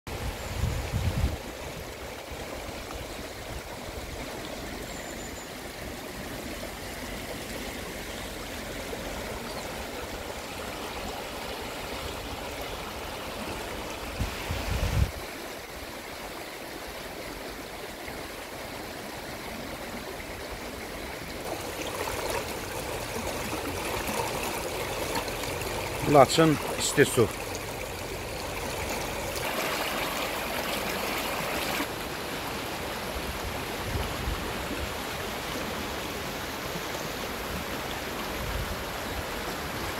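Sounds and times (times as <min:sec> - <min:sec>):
stream rushing over rocks: 0:00.1 - 0:39.9.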